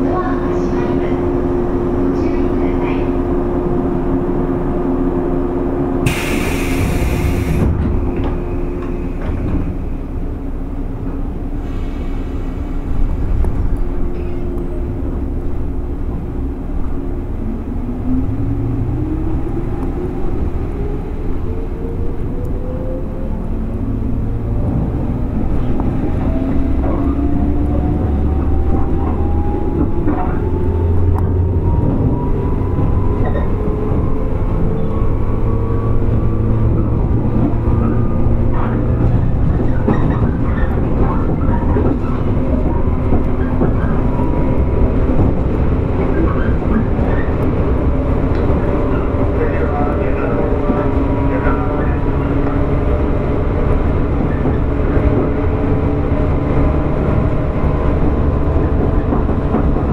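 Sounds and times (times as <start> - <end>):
wheels rumbling on rail: 0.0 - 59.9
rail clicks: 6.0 - 17.0, 24.5 - 59.9.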